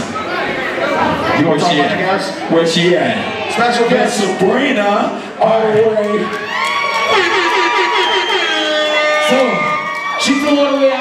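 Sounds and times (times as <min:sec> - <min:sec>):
crowd cheering: 0:05.5 - 0:11.0
long held whoops: 0:06.4 - 0:10.4.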